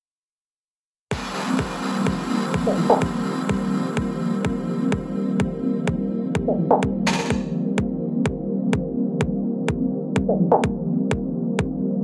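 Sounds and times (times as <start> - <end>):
four-on-the-floor kick drum: 1.1 - 11.8
sustained synth pad: 1.2 - 8.6.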